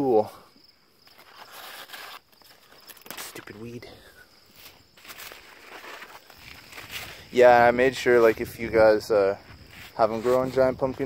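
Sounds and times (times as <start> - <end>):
leaves rustling: 1.0 - 11.0.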